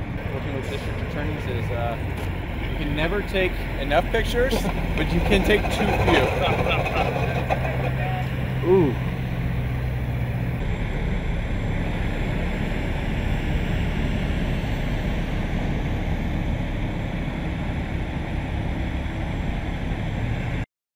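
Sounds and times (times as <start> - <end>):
diesel engines idling: 0.0 - 20.6.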